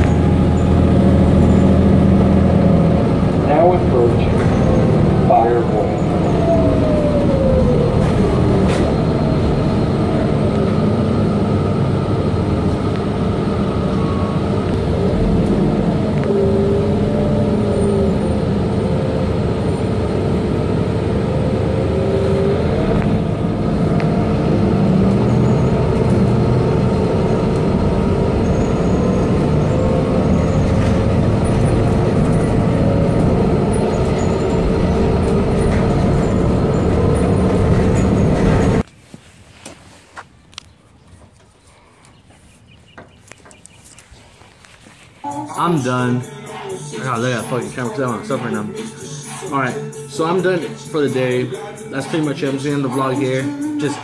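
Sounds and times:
whine rising and falling: 0.0 - 38.8
vehicle running noise from inside: 0.0 - 38.9, 42.0 - 54.0.

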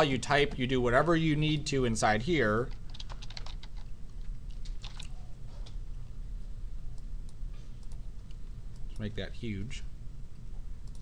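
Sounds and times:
steady low hum: 0.0 - 11.0
keyboard and mouse clicks: 2.8 - 5.8, 7.0 - 9.1.

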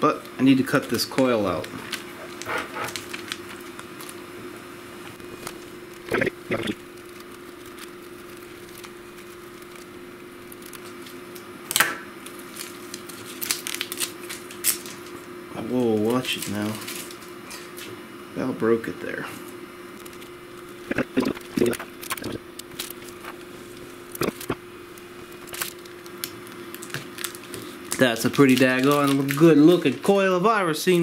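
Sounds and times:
faint hum: 0.0 - 31.0
plastic film crinkling: 0.7 - 4.3, 5.1 - 11.5, 12.2 - 15.2, 16.0 - 17.9, 19.9 - 30.2
scissors snipping plastic film: 10.5 - 15.1, 25.4 - 30.0.

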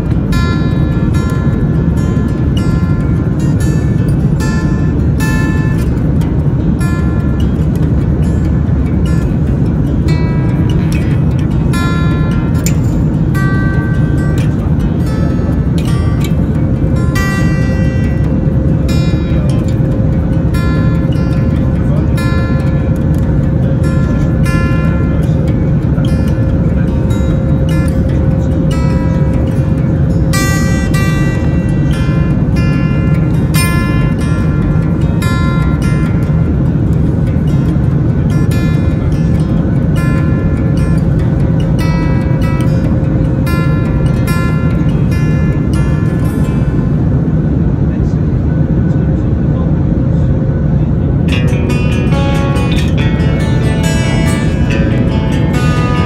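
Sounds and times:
jet airliner cabin noise: 0.0 - 56.0
plucked guitar-like music: 0.0 - 56.0
steady hum: 0.0 - 56.0.

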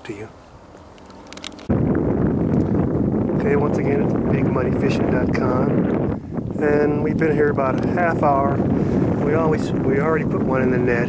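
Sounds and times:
wind buffeting microphone: 0.9 - 11.0.

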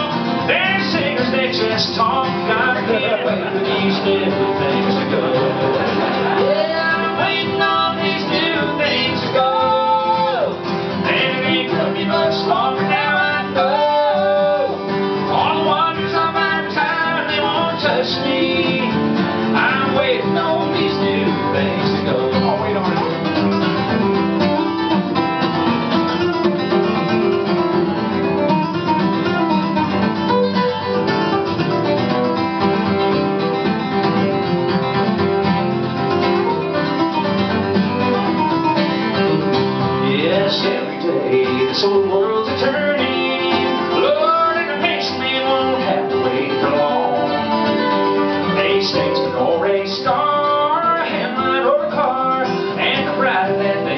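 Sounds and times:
acoustic guitar strumming: 0.0 - 53.9
plucked guitar lead with bent notes: 0.0 - 53.9.

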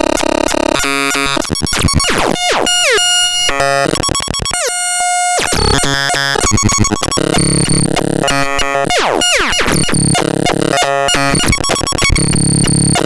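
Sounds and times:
harsh noisy synthesizer pattern: 1.0 - 13.0.

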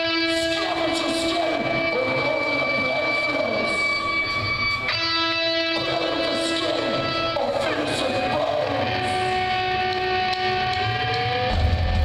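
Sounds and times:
distorted electric guitars droning: 0.0 - 12.0
guitar feedback whine: 0.0 - 12.0.

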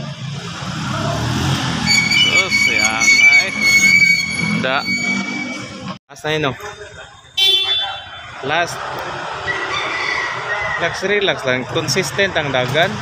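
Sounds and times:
voices: 0.0 - 13.0
high-pitched whine: 1.8 - 6.0.

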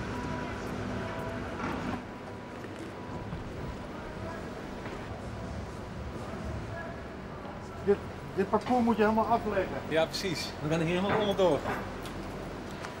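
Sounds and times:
large hall noise: 0.0 - 13.0.

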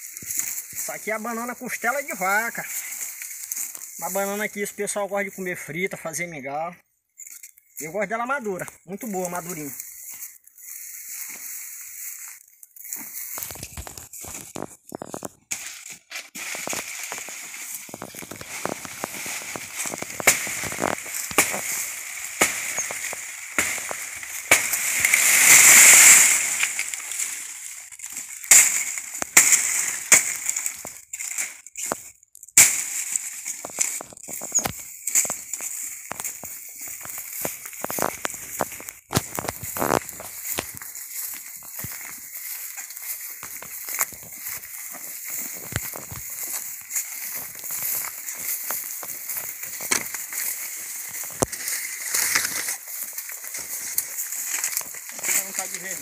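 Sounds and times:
footsteps in dry leaves: 0.0 - 5.0, 7.2 - 56.0.

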